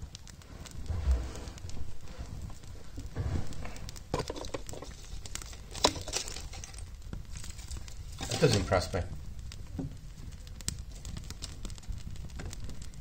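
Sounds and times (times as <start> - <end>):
wood fire crackling: 0.0 - 13.0.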